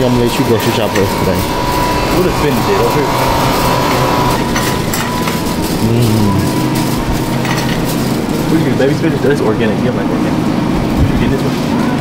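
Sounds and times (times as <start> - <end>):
cart clicks and rattles: 0.0 - 10.3
shopping cart rolling: 0.0 - 12.0
steady background tone: 0.0 - 12.0.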